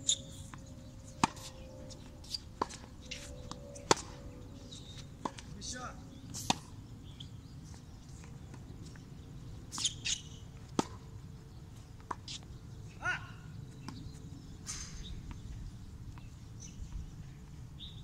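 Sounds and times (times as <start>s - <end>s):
tennis ball bouncing: 0.5s - 1.6s, 3.5s - 4.2s, 5.2s - 5.5s, 9.7s - 11.1s.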